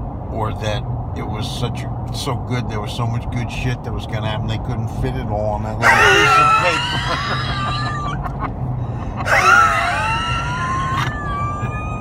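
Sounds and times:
car engine and road hum: 0:00.0 - 0:12.0
high-pitched wheezing laughter: 0:05.8 - 0:12.0.

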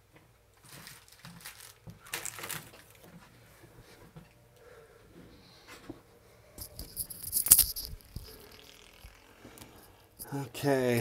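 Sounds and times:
small hard objects rattling: 0:06.6 - 0:10.3.

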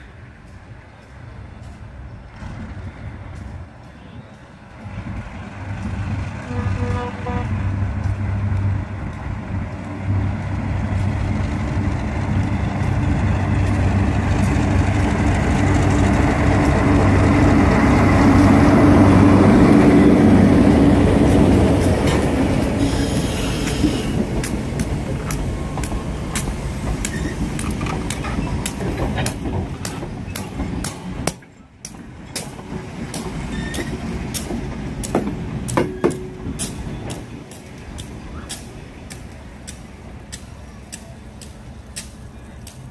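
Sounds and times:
diesel locomotive engines droning: 0:00.0 - 0:42.9
wheels clicking over rail joints: 0:07.5 - 0:42.9.

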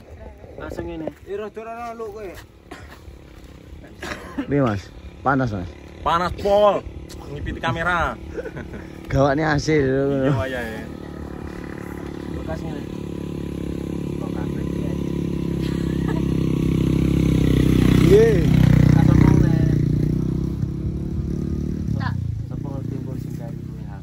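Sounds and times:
motorcycle engine passing: 0:00.0 - 0:24.0.

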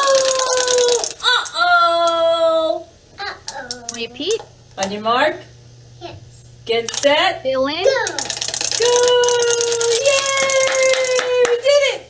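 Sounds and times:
wind-up toy clicking rattle: 0:00.0 - 0:01.2, 0:08.0 - 0:11.2.

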